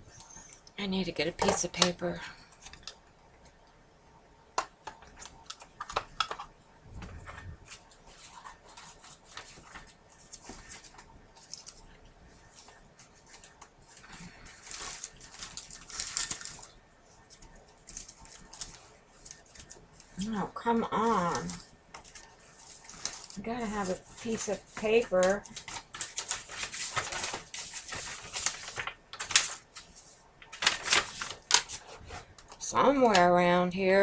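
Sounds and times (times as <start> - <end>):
paper rustling: 4.8 - 33.3.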